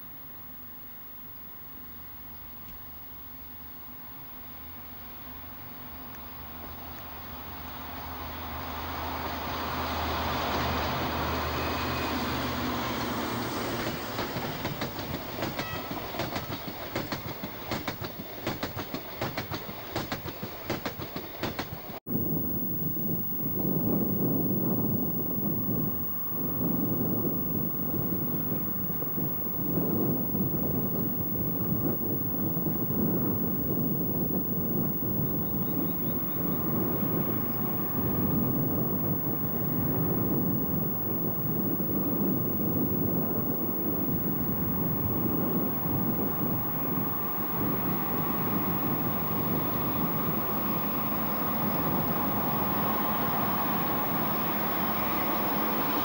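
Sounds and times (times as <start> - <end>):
diesel locomotive engine: 3.9 - 56.0
low uneven train rumble: 3.9 - 56.0
train wheels clacking over rail joints: 10.2 - 22.0.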